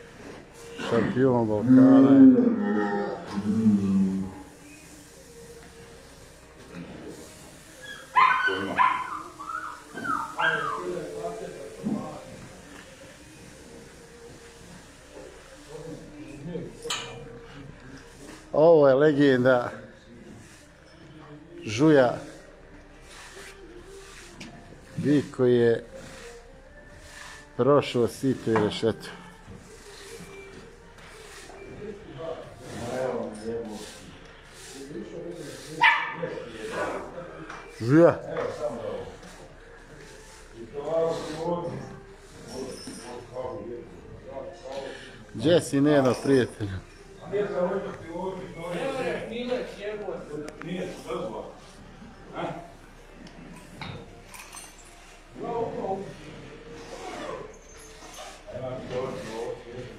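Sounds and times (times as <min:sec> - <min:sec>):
men talking indistinctly: 0:00.8 - 0:04.4, 0:09.9 - 0:12.7, 0:15.6 - 0:20.6, 0:21.3 - 0:22.4, 0:24.9 - 0:26.3, 0:27.6 - 0:29.3, 0:31.6 - 0:52.9, 0:55.3 - 0:57.5, 0:58.2 - 0:59.9
high wavering animal calls: 0:07.8 - 0:11.0.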